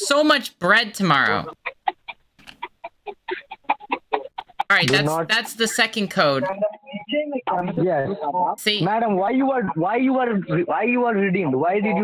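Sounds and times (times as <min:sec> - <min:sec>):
person giggling: 0:01.5 - 0:08.4.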